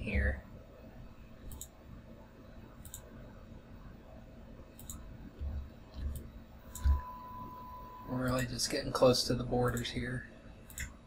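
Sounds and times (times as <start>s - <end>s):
computer mouse clicks: 1.4s - 1.8s, 2.8s - 3.1s, 4.8s - 7.0s, 10.6s - 11.0s.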